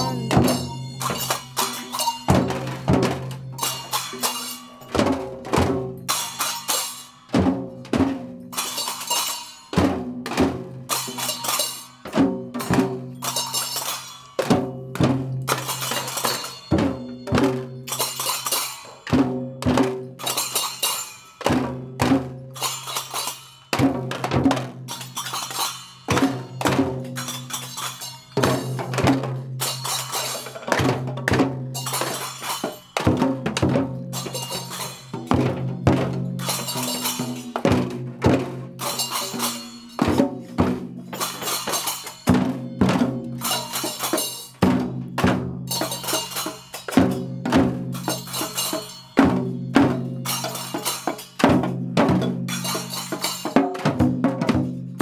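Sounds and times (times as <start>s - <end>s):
hand cymbals ringing: 0.0s - 55.0s
hand drums: 0.0s - 55.0s
tambourines: 10.9s - 19.2s, 34.1s - 37.8s, 38.8s - 40.3s, 45.7s - 51.4s.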